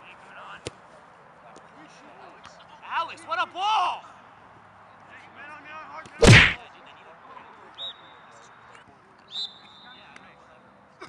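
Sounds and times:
referee's whistle: 0:09.3 - 0:10.0.

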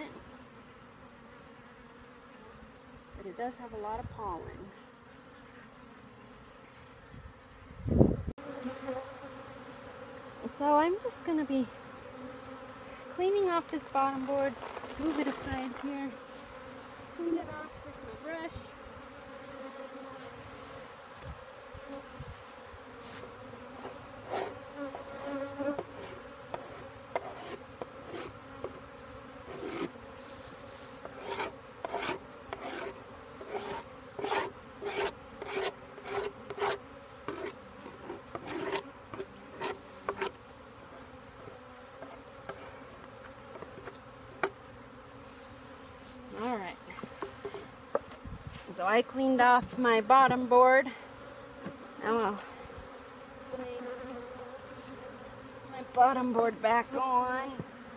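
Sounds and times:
bees buzzing: 0:00.0 - 0:57.9
brush scraping board: 0:22.4 - 0:28.8, 0:29.4 - 0:40.4.

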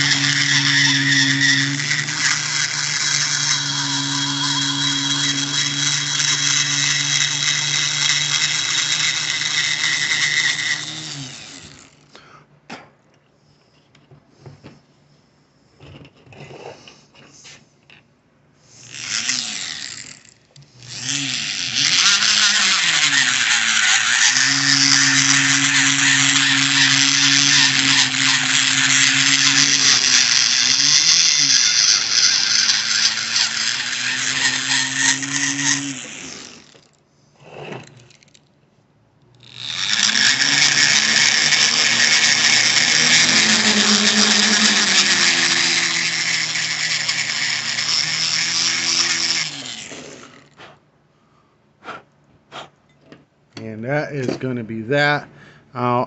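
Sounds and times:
rotary tool grinding metal: 0:00.0 - 0:12.1, 0:18.7 - 0:38.4, 0:39.4 - 0:50.6.

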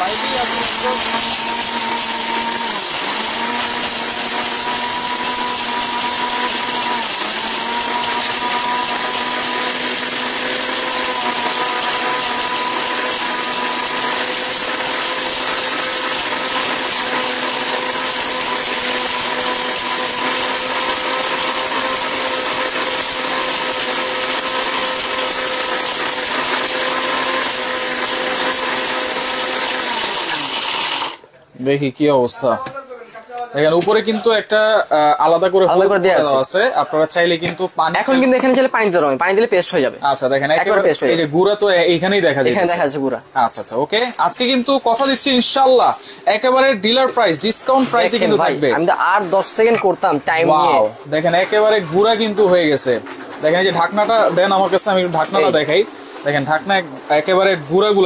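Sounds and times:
grinding hiss: 0:00.0 - 0:31.2, 0:43.6 - 0:58.0
mixer grinder motor whine: 0:00.0 - 0:31.3, 0:33.6 - 0:58.0.

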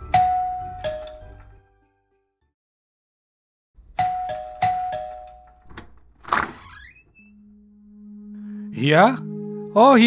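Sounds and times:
doorbell ding-dong: 0:04.0 - 0:05.6
low steady musical tone: 0:07.3 - 0:10.0.

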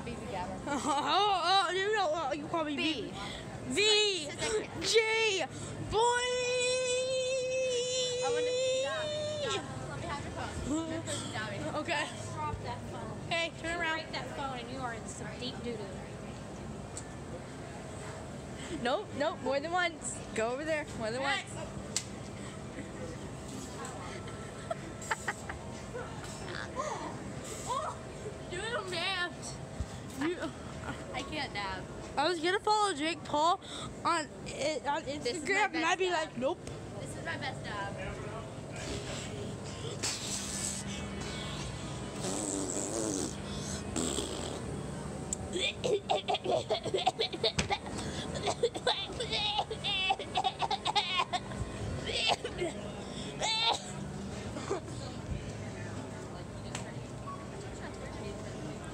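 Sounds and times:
indistinct chatter: 0:00.0 - 0:58.9
person laughing: 0:24.6 - 0:25.6.

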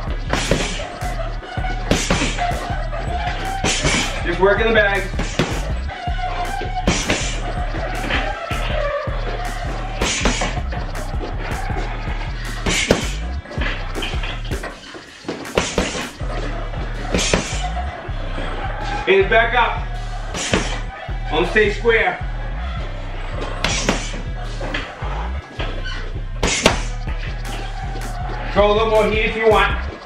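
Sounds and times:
background music with bass: 0:00.0 - 0:30.0
punches hitting heavy bag: 0:00.3 - 0:00.8, 0:01.9 - 0:04.2, 0:06.6 - 0:08.8.

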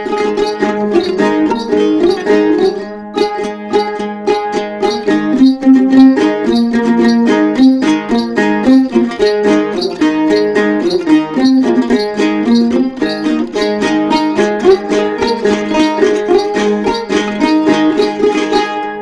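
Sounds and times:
plucked lute notes: 0:00.0 - 0:19.0.

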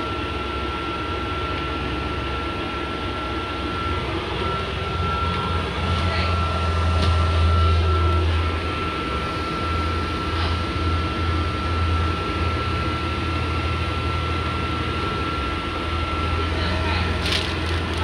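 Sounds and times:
bus engine drone: 0:00.0 - 0:18.0.

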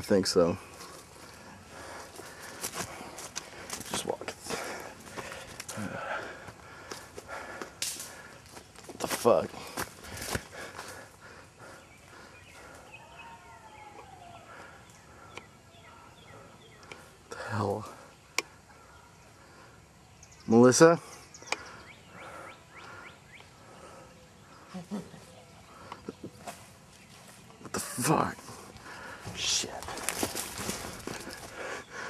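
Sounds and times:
footsteps through undergrowth: 0:00.6 - 0:11.1, 0:26.3 - 0:27.6, 0:28.4 - 0:31.8
faint bird chirping: 0:08.1 - 0:32.0
leaves and stems brushing: 0:29.3 - 0:31.6.

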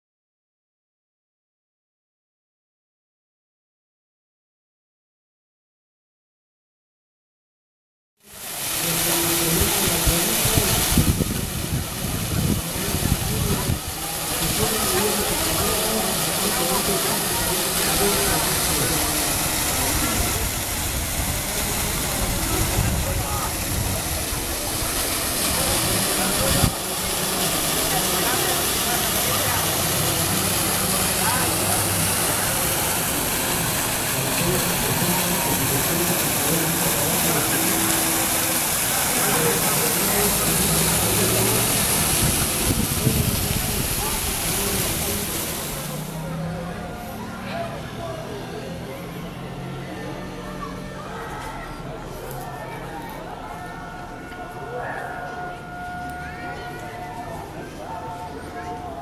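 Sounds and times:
fountain water splashing: 0:08.2 - 0:59.0
steady outdoor noise: 0:08.2 - 0:59.0
faint distant voices: 0:08.3 - 0:59.0
wind buffeting microphone: 0:42.0 - 0:44.4.

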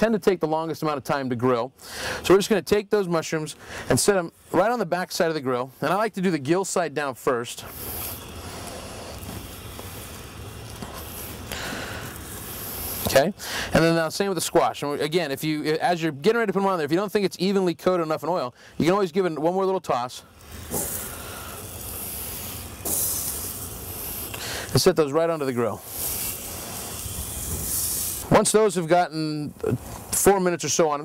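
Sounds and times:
food sizzling on a grill: 0:03.9 - 0:16.8, 0:17.4 - 0:30.9.

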